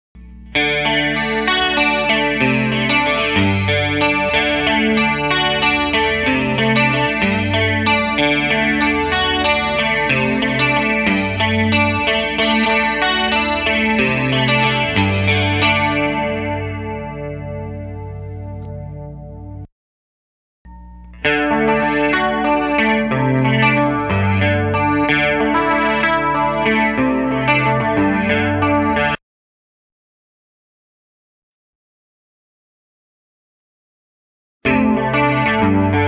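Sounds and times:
electric guitar riff with chorus: 0:00.2 - 0:19.7, 0:20.7 - 0:29.2, 0:34.7 - 0:36.0.

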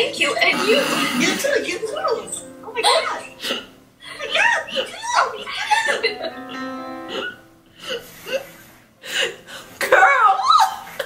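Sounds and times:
woman's stifled laughter: 0:04.3 - 0:06.4.

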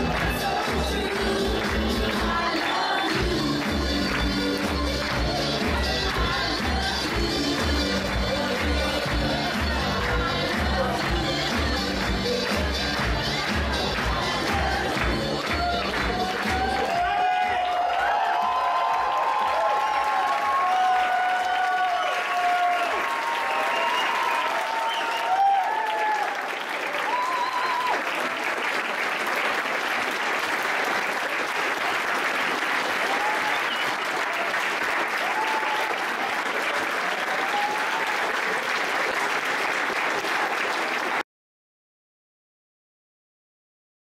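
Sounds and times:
music: 0:00.0 - 0:17.8
audience applauding: 0:00.0 - 0:41.2
shouted cheers: 0:15.5 - 0:28.4, 0:32.9 - 0:38.7.

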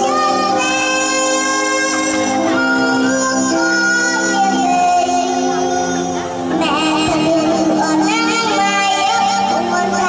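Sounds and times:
girl singing into a microphone: 0:00.0 - 0:10.0
instrumental backing music: 0:00.0 - 0:10.0.

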